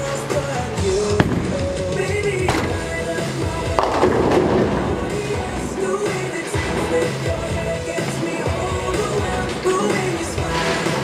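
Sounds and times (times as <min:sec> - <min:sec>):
bowling ball rolling: 0:00.0 - 0:11.0
music playing: 0:00.0 - 0:11.0
bowling pins crashing: 0:00.8 - 0:11.0.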